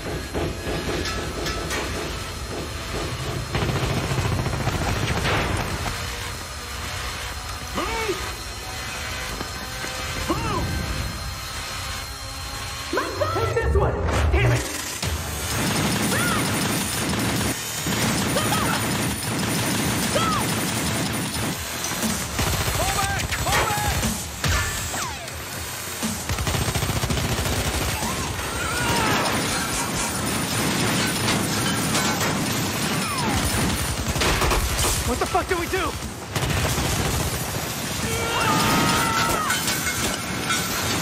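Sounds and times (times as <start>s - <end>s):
automatic gunfire: 3.5s - 6.1s, 15.5s - 24.3s, 26.2s - 39.0s
voices shouting: 27.8s - 29.9s, 38.0s - 39.7s.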